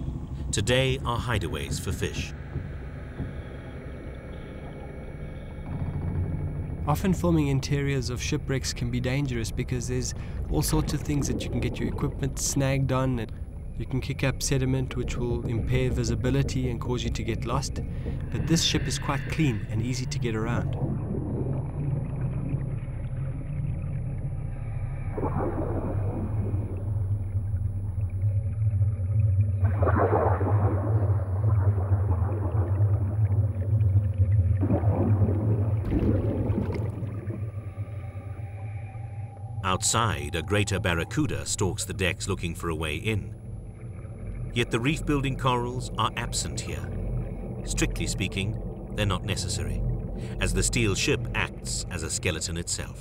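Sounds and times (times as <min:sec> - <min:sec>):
low underwater rumble: 0:00.0 - 0:53.0
bubbling from diver exhaling: 0:17.8 - 0:23.5, 0:29.6 - 0:38.3.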